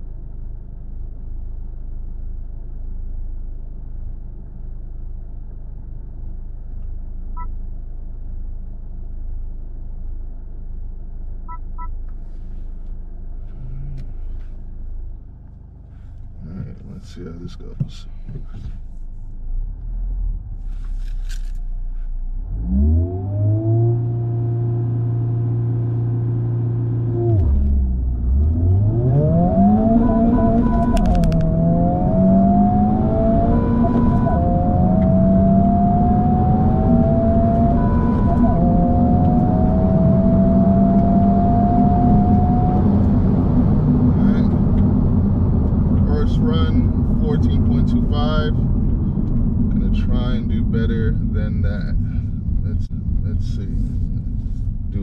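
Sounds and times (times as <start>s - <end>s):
road and wind noise: 0.0s - 55.0s
car engine revving and accelerating: 22.3s - 55.0s.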